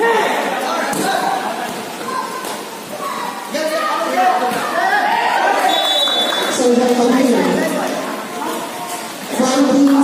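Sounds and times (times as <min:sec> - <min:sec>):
voices calling out and chattering: 0:00.0 - 0:10.0.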